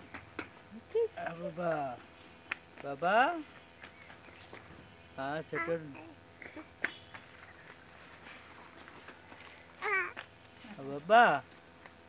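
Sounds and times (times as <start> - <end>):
baby cooing: 5.5 - 6.7, 9.8 - 10.2.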